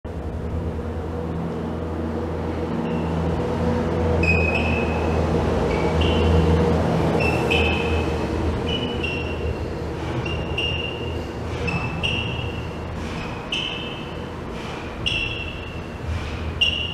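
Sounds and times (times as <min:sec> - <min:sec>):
short high squeaks: 0:04.2 - 0:05.1, 0:05.7 - 0:06.4, 0:07.2 - 0:14.2, 0:15.0 - 0:16.0, 0:16.6 - 0:16.9.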